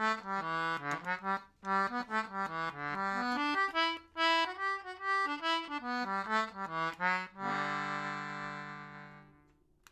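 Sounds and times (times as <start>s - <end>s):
accordion playing quick notes: 0.0s - 9.4s.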